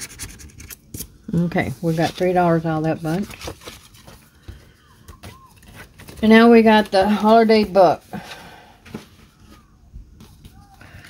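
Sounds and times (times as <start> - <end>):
paper tickets rustling: 1.4 - 9.6.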